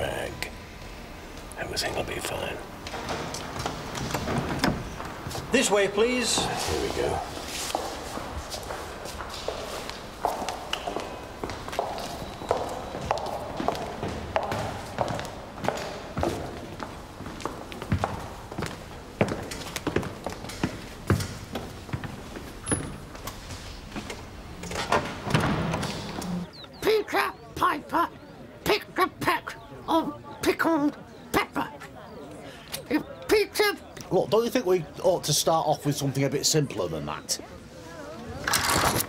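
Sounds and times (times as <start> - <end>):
footsteps on stone floor: 6.1 - 24.4
murmur of voices: 26.2 - 39.0.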